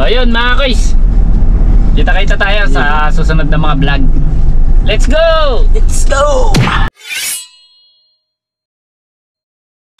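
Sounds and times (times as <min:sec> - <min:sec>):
metallic ringing clang: 0:07.0 - 0:08.4.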